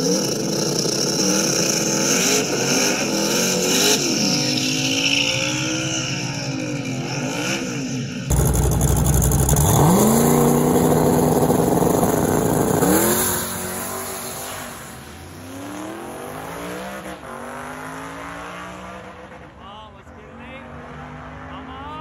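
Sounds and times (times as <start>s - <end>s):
drag cars accelerating: 0.0s - 22.0s.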